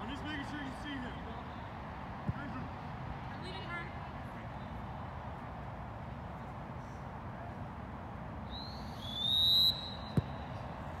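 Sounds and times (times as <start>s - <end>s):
referee's whistle blasts: 8.6s - 10.4s.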